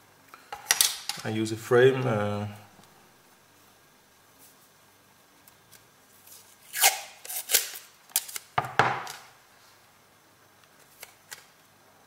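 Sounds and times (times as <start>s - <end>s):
masking tape ripping: 6.2s - 8.5s.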